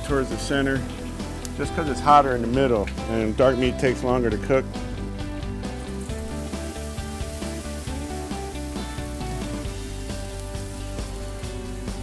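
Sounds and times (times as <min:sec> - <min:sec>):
background music: 0:00.0 - 0:12.0
chicken sizzling on a grill: 0:00.0 - 0:12.0.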